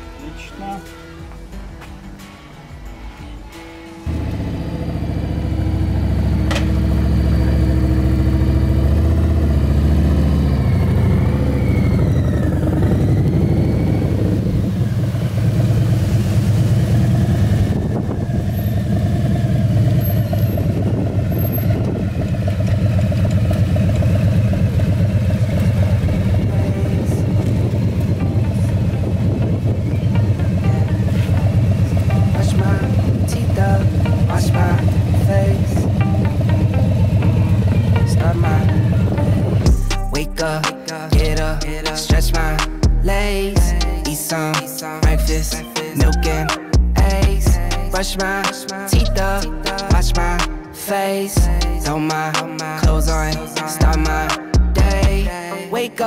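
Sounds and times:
motorcycle engine revving: 4.0 - 44.2.

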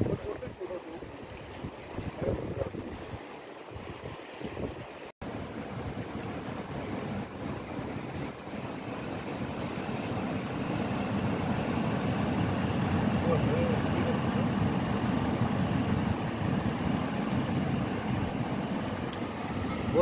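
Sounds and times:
wind buffeting microphone: 0.0 - 20.0
river water rushing: 2.8 - 20.0.

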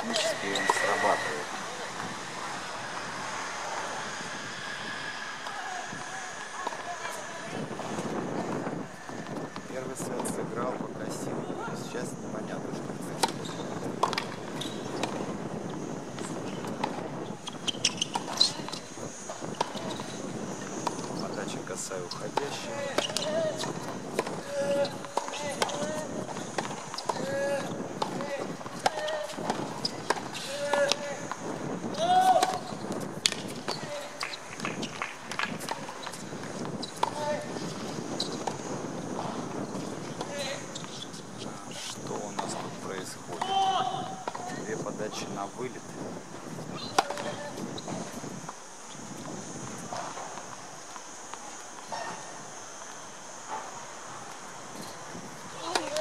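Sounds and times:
voices talking: 0.0 - 3.8, 5.4 - 14.7, 17.9 - 48.2
tennis balls struck and bouncing: 13.1 - 21.2, 21.9 - 41.2, 42.4 - 44.6, 46.3 - 52.4, 55.5 - 56.0.

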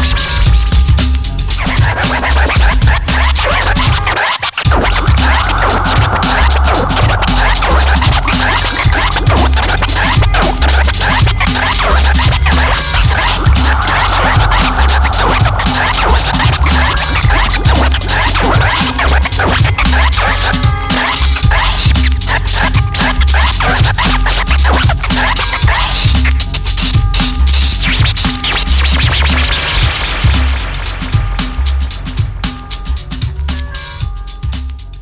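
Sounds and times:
turntable scratching: 0.0 - 34.2
hip-hop beat: 0.0 - 35.0.

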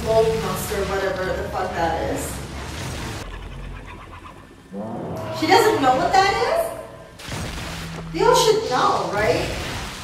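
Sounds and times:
night jungle ambience: 0.0 - 9.9.

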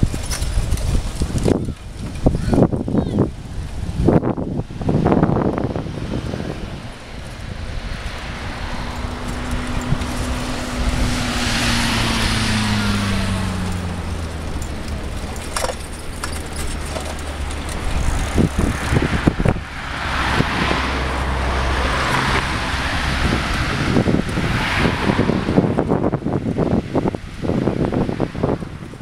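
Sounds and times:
motorcycle passing: 0.0 - 29.0
tyre and traffic noise: 0.0 - 29.0.

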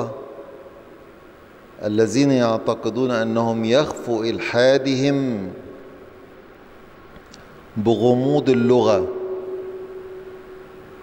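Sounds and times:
faint room noise: 0.0 - 11.0
person speaking: 7.7 - 9.4
steady ringing tone: 8.7 - 11.0.

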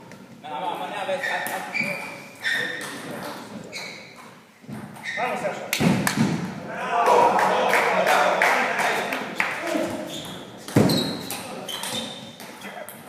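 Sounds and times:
men talking: 0.4 - 2.0, 6.7 - 10.7.

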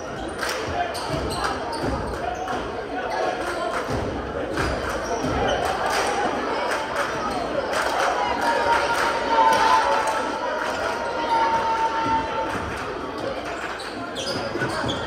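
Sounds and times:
spectators chattering: 0.0 - 15.0.

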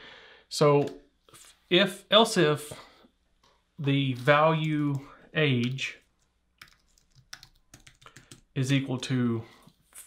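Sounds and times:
faint typing on a keyboard: 4.2 - 10.0.

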